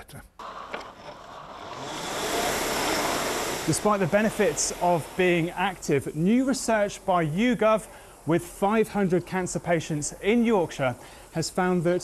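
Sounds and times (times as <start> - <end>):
rowing machine flywheel whooshing: 0.4 - 7.0.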